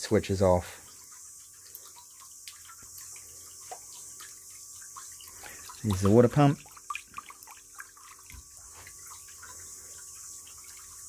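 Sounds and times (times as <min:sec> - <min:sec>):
water dripping: 0:00.0 - 0:11.0
water trickling into drum: 0:00.0 - 0:11.0.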